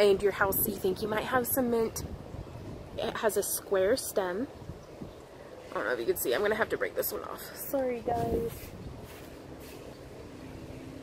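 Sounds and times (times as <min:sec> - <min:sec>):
low engine hum: 0:07.8 - 0:11.0.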